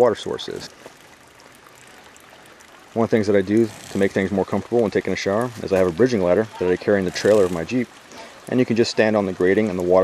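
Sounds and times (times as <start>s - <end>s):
shower water running: 0.0s - 10.0s.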